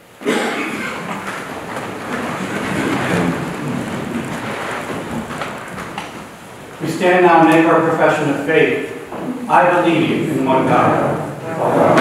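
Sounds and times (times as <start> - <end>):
congregation rustling and shuffling: 0.0 - 12.0.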